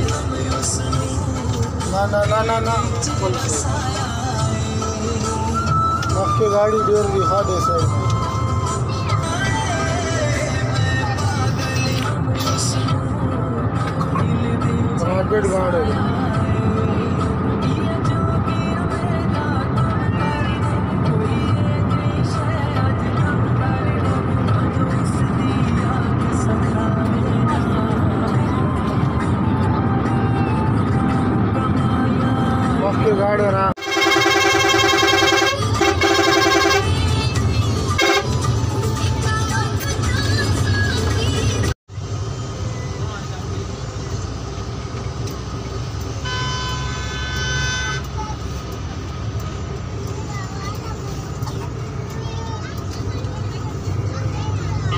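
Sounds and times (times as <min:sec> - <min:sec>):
music with singing voice: 0:00.0 - 0:33.7, 0:35.4 - 0:41.8
bus engine and road rumble: 0:00.0 - 0:54.9
vehicle horn: 0:33.8 - 0:37.0, 0:37.9 - 0:38.5, 0:46.2 - 0:48.2.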